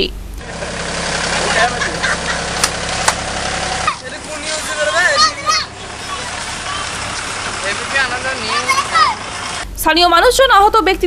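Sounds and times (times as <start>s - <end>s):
traffic noise: 0.0s - 11.0s
vehicle engine running: 0.0s - 11.0s
faint voices: 3.8s - 9.3s.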